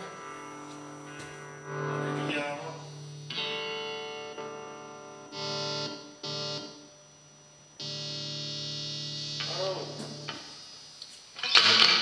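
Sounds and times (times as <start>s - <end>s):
electric guitar chords: 0.0s - 10.8s.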